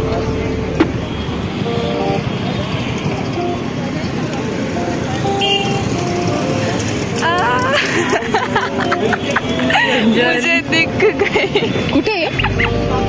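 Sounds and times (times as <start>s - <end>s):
traffic running: 0.0s - 13.0s
voices of people: 0.0s - 13.0s.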